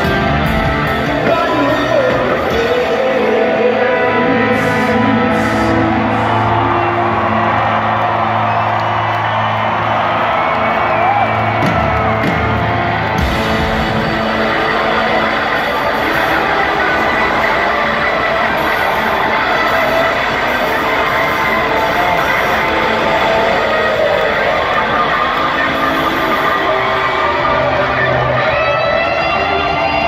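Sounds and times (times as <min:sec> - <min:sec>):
crowd cheering and whooping: 0:00.0 - 0:30.0
live rock band playing: 0:00.0 - 0:30.0.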